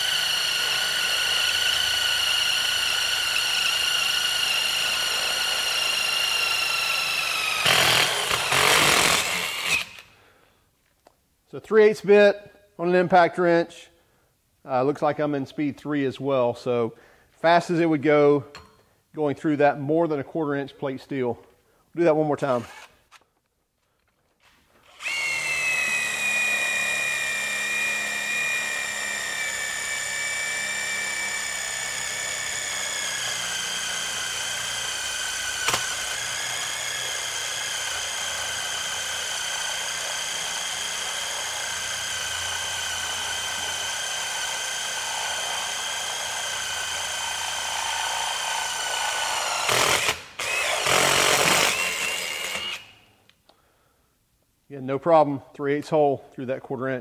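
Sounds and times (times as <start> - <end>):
impact driver whining: 0.0 - 10.1, 22.4 - 23.3, 24.8 - 53.1.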